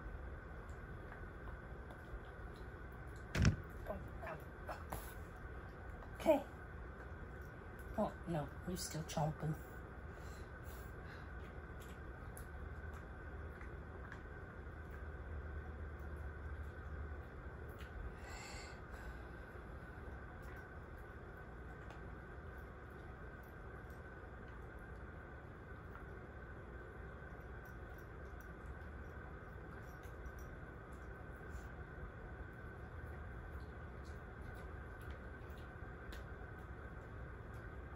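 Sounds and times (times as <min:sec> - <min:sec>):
low steady hum: 0:00.0 - 0:37.9.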